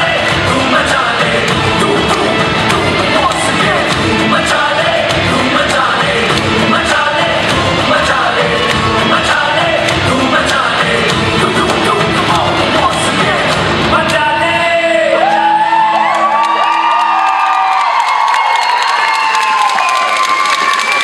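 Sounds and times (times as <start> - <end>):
loud dance music: 0.0 - 17.3
audience cheering and whooping: 15.0 - 21.0.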